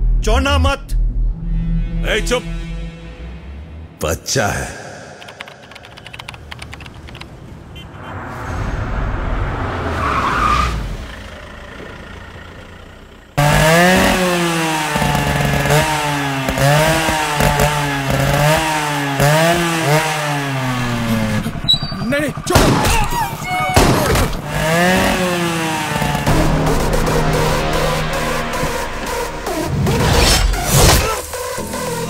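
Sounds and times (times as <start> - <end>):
low rumble: 0.0 - 4.0, 7.7 - 13.0
motorcycle engine revving: 10.8 - 32.0.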